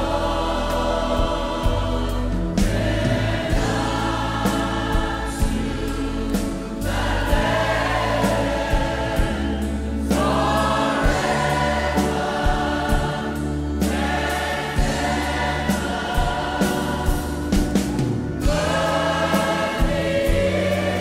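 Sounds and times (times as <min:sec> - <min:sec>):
bass: 0:00.0 - 0:21.0
choir singing: 0:00.0 - 0:21.0
steady drum beat: 0:00.0 - 0:21.0.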